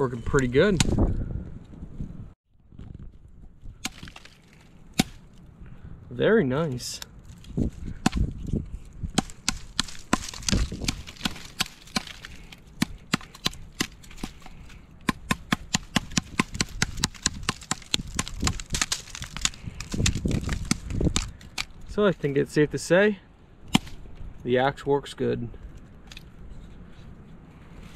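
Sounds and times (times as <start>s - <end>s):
hatchet chopping wood: 3.8s - 4.4s, 5.0s - 5.2s, 8.0s - 8.3s, 9.1s - 21.8s, 23.7s - 24.0s.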